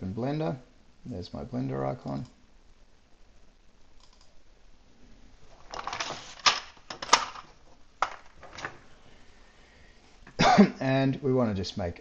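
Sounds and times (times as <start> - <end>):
computer mouse clicks: 4.0 - 4.4.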